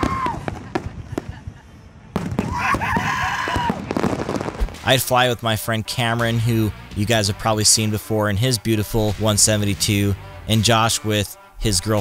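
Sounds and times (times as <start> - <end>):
man whooping: 0.0 - 0.6, 2.4 - 3.9
fireworks crackling and popping: 0.0 - 5.5.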